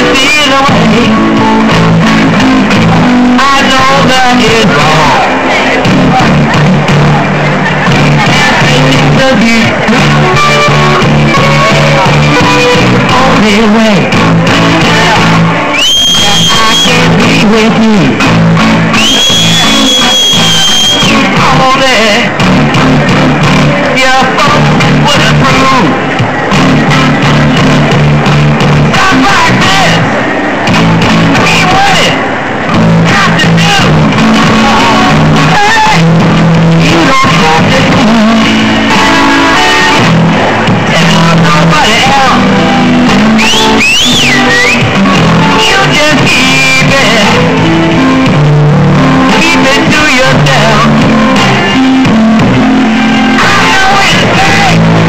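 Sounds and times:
electric guitar high bent note: 0.0s - 55.0s
low bass line: 0.0s - 55.0s.

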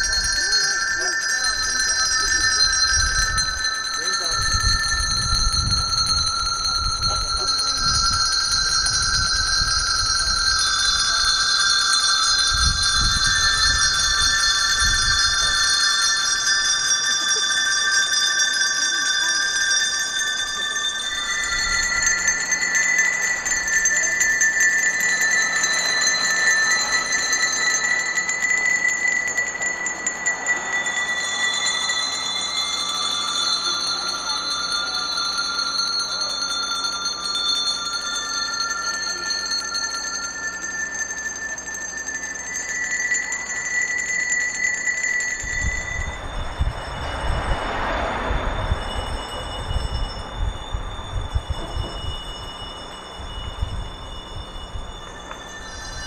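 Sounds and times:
hand bells ringing: 0.0s - 56.0s
low rumbling: 0.0s - 56.0s.

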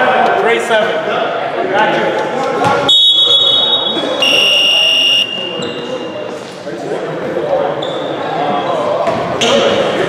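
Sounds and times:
shrill referee whistle: 2.9s - 6.2s.

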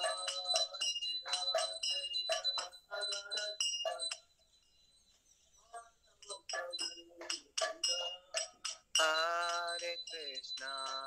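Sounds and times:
held ringing tone: 0.0s - 11.0s.

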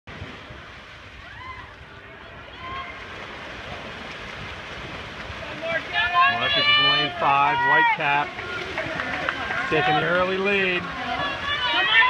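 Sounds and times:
crowd noise: 0.1s - 12.0s
distant voices calling out: 5.4s - 12.0s.

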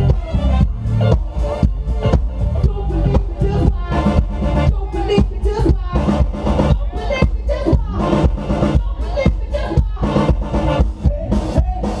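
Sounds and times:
bass and guitar: 0.0s - 12.0s
drum kit beat: 0.0s - 12.0s
person singing: 2.4s - 12.0s.

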